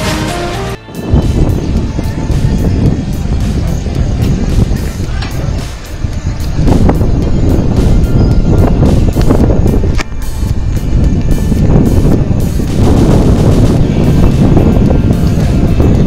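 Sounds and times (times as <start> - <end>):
wind buffeting microphone: 0.8 - 16.0.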